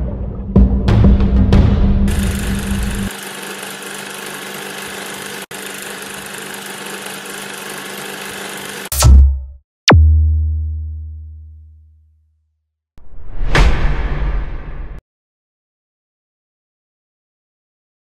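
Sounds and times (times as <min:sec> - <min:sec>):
film projector whirring: 0:02.1 - 0:08.9
loud hit: 0:13.3 - 0:15.0.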